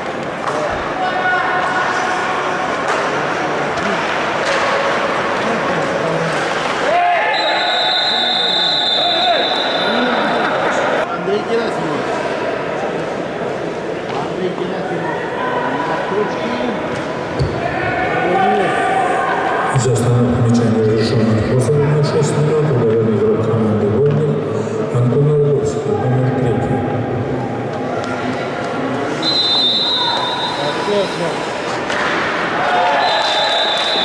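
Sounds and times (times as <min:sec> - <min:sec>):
voices echoing: 0:00.0 - 0:34.0.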